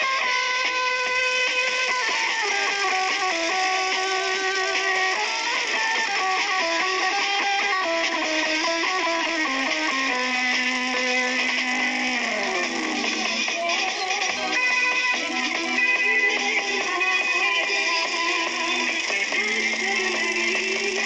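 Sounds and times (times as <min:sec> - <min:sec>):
electric guitar melody: 0:00.0 - 0:21.0.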